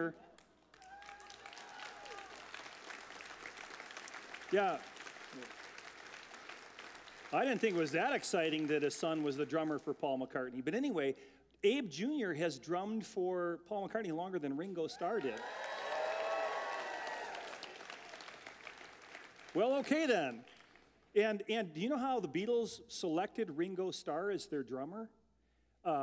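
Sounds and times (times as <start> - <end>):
faint applause: 0.3 - 9.4, 15.0 - 20.9.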